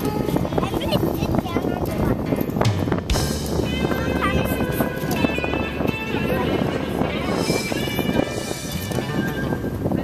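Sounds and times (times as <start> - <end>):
background music: 1.6 - 10.0.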